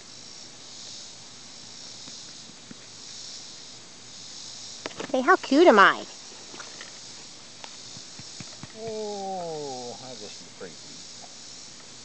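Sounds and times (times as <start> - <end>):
high-pitched background hiss: 0.0 - 12.0
person saying oh: 8.8 - 10.0.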